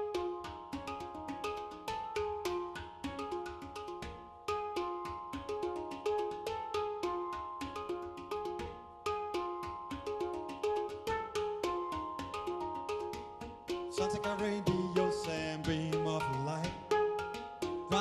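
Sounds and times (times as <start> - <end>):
handpan melody played by hand: 0.0 - 18.0.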